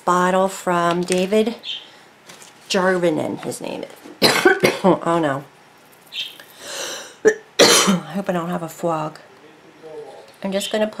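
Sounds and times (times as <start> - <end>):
woman coughing: 4.2 - 5.0, 7.2 - 8.2
long breath: 6.5 - 7.2.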